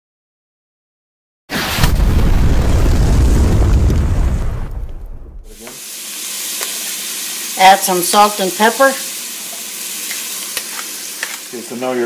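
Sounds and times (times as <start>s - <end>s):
explosion with deep rumble: 1.5s - 5.6s
vegetables sizzling in pot: 5.5s - 12.0s.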